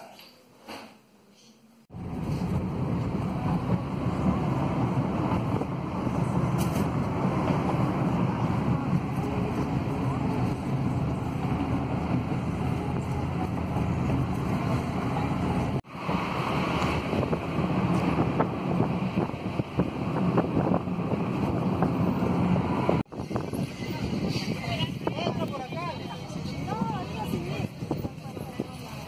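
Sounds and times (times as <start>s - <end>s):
car cabin road and engine noise: 1.9s - 28.1s.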